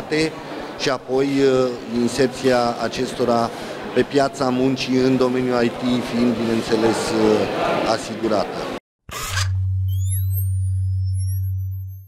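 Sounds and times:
low synthetic hum: 9.4 - 12.0
high tones gliding upward: 9.7 - 12.0
tones sweeping downward: 9.7 - 12.0.

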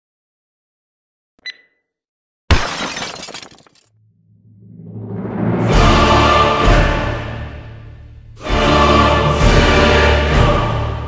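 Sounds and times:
short electronic beep: 1.4 - 1.8
glass shattering: 2.5 - 3.9
low hum: 4.0 - 8.4
music: 4.7 - 11.0.

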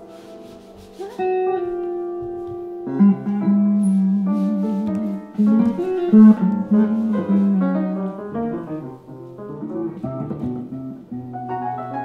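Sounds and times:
electric guitar notes: 0.0 - 12.0
piano tones: 0.0 - 12.0.

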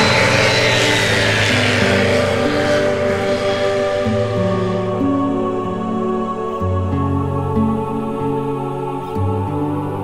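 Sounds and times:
light aircraft engine passing: 0.0 - 6.6
background music sustained notes: 0.0 - 10.0.

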